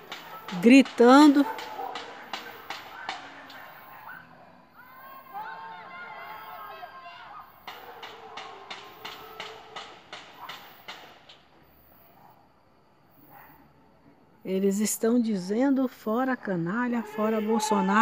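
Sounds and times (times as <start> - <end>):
people shouting: 0.0 - 10.8, 16.8 - 18.0.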